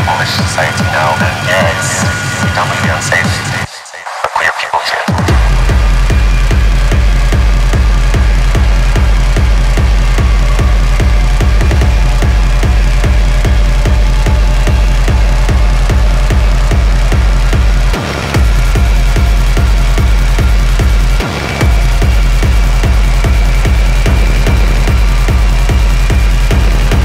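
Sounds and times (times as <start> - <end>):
noisy synth layer: 0.0 - 27.0
techno music: 0.0 - 27.0
heavy kick drum beat: 5.1 - 27.0.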